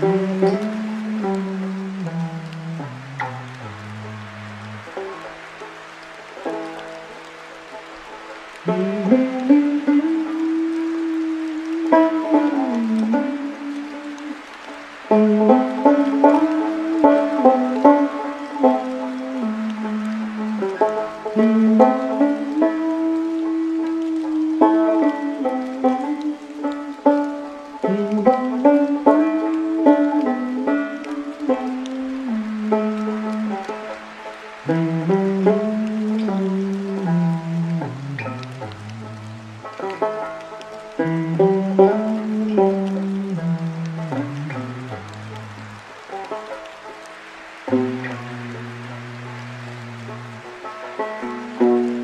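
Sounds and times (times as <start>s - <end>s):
rain hiss: 0.0s - 52.0s
solo banjo: 0.0s - 52.0s.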